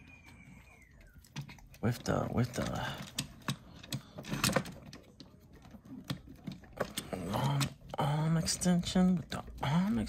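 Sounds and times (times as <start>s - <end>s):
plastic toy parts clicking: 1.1s - 10.0s.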